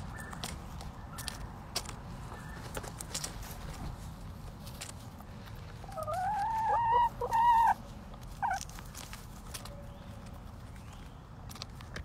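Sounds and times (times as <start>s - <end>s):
hen calling: 5.9s - 7.8s.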